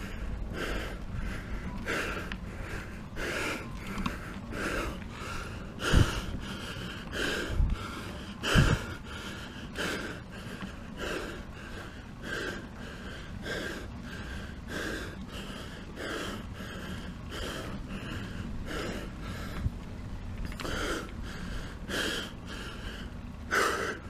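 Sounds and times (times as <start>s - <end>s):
heavy rhythmic breathing: 0.0s - 24.0s.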